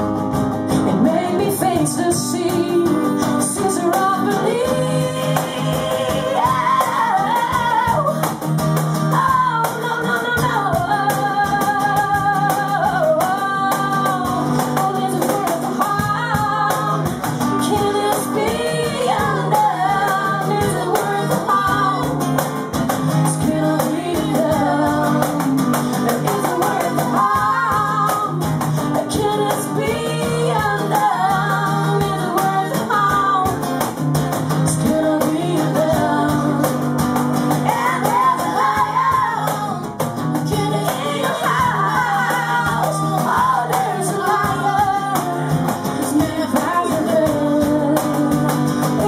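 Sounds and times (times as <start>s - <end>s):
live band playing: 0.0s - 49.0s
person singing: 0.8s - 8.4s, 9.1s - 22.3s, 23.2s - 33.7s, 34.6s - 36.8s, 37.6s - 49.0s.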